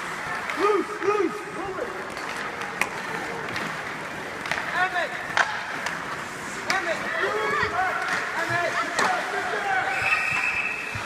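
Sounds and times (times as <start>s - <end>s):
skates on ice: 0.0s - 11.0s
sticks and puck clacking: 0.0s - 11.0s.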